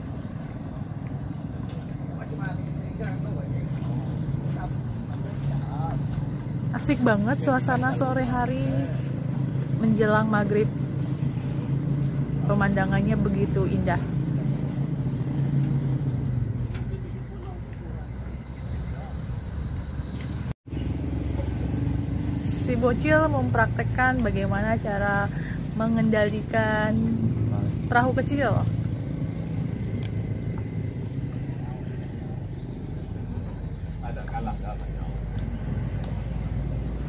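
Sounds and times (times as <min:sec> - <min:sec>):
boat motor droning: 0:00.0 - 0:37.0.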